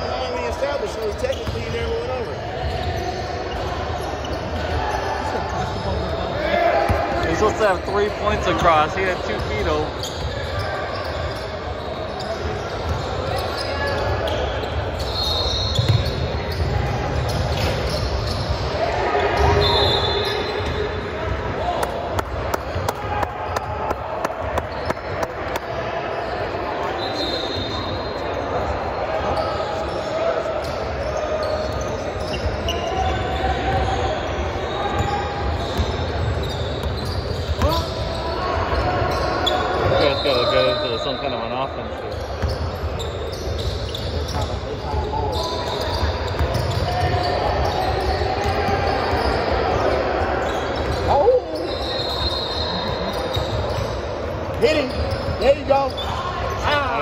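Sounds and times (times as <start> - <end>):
shoes squeaking on court: 0.1 - 22.8, 24.4 - 57.0.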